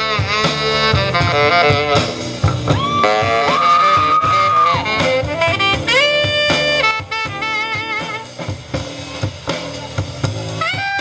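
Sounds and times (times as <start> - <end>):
drums: 0.0 - 11.0
saxophone jazz solo: 0.0 - 11.0.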